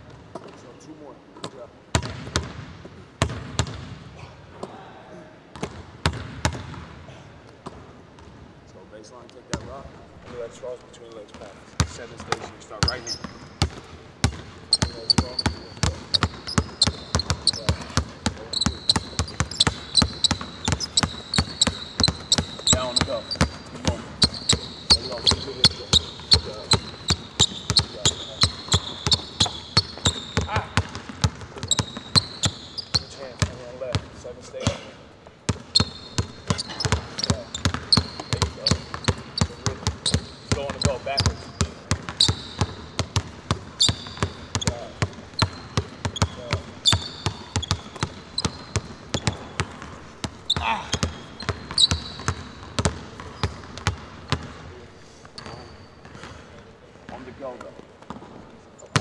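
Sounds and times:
basketballs bouncing on hardwood: 1.4 - 4.0, 5.5 - 6.9, 11.3 - 34.8, 35.5 - 54.6, 58.0 - 59.0.

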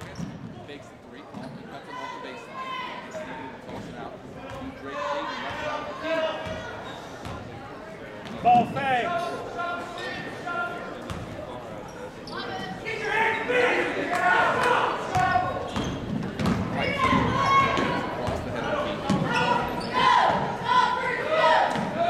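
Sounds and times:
spectators' voices: 0.0 - 22.0.

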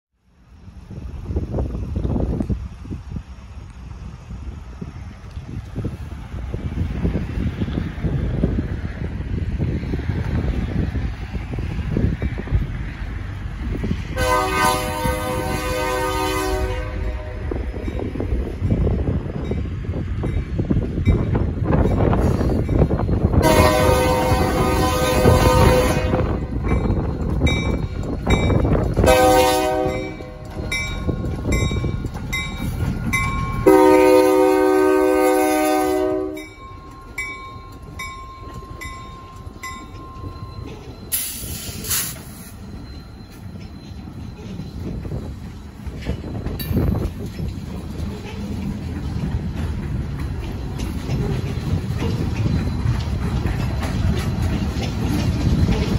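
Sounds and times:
locomotive horn blasts: 14.2 - 17.6, 23.4 - 26.5, 29.0 - 30.4, 33.6 - 36.5
train wheels clicking: 17.6 - 35.0, 35.9 - 55.9.

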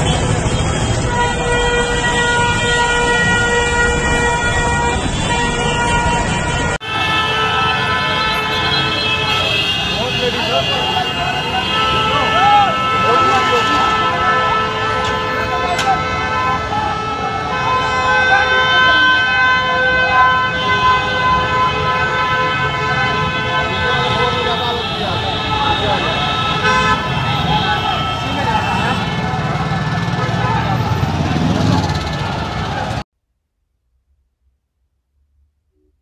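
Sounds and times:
street noise: 0.0 - 33.0
vehicle horns honking: 0.0 - 33.0
large crowd shouting: 6.9 - 20.5, 22.7 - 33.0.

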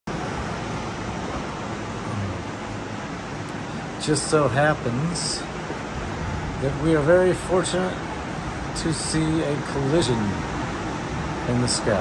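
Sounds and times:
ocean surf roar: 0.1 - 12.0
strong storm wind: 0.1 - 12.0.

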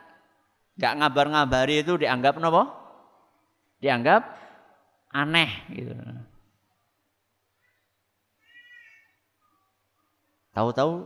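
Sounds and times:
cat meowing faintly: 7.6 - 9.2.

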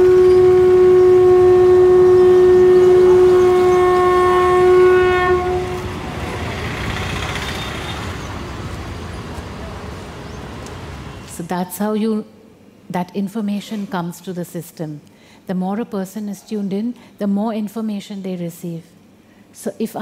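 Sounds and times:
long horn note: 0.0 - 6.2
crowded street bustle: 5.4 - 11.4.

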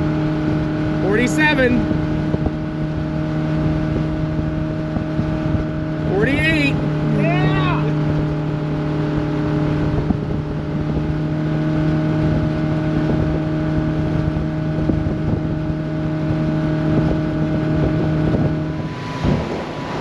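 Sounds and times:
speedboat engine at high speed: 0.0 - 20.0
wind: 0.0 - 20.0.

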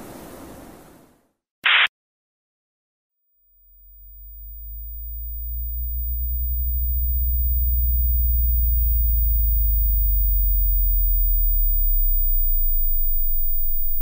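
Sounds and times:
deep low drone: 3.4 - 14.0.

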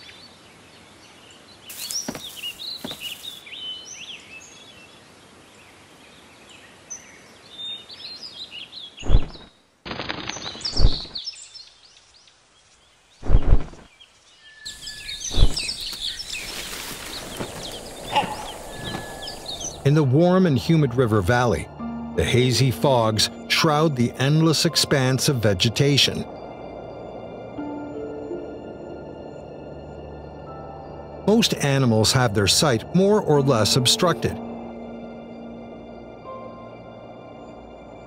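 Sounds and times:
small birds chirping: 0.0 - 9.7, 10.3 - 21.5.

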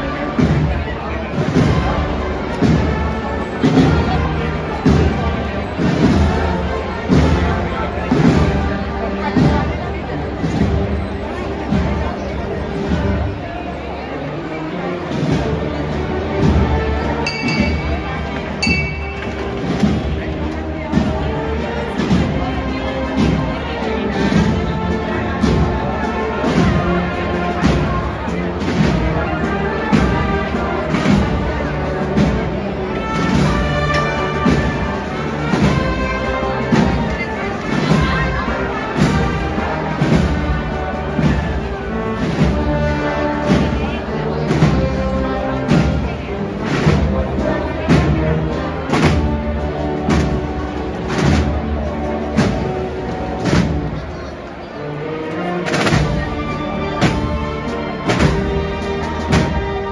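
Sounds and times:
steady drum beat: 0.0 - 11.9, 15.0 - 54.1, 55.6 - 59.9
wind band playing a march: 0.0 - 59.9.

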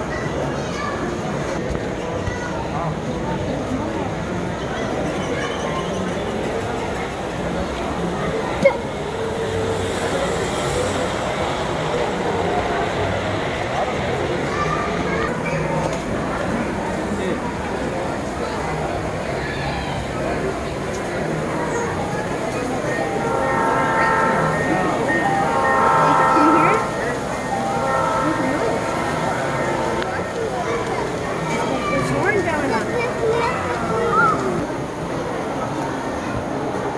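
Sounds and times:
model train rolling on track: 0.0 - 36.9
murmur of people talking: 0.0 - 36.9
model train horn chime: 22.8 - 30.4.

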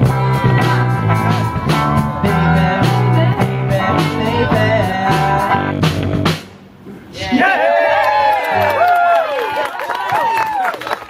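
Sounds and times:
keyboard: 0.0 - 6.5
drum kit beat: 0.0 - 6.7.

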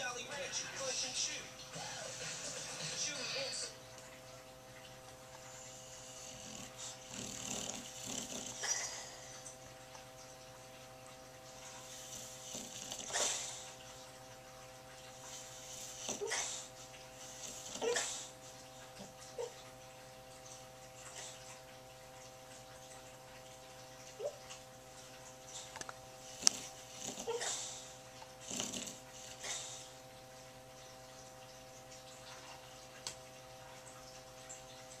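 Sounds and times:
electrical hum: 0.0 - 35.0.

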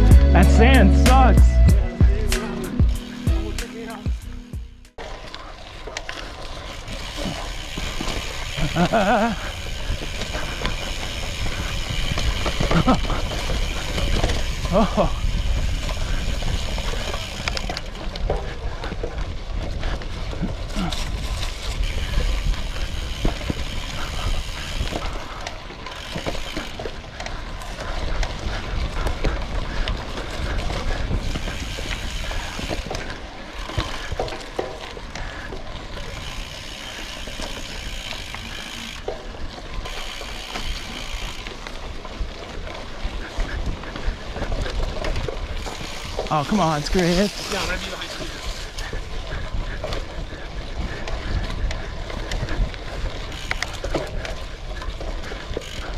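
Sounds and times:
bike tyre noise on dirt: 0.0 - 55.9
bike rattling over bumps: 2.1 - 55.9
wind on microphone: 28.3 - 33.0.

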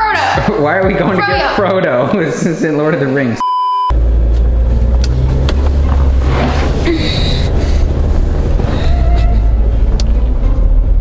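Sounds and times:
car cabin road rumble: 3.9 - 11.0.

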